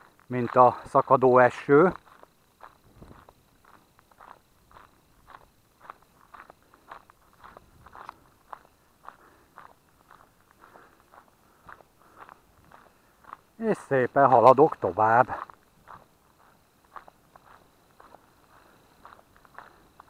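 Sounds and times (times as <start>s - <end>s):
footsteps on gravel: 0.0s - 20.0s.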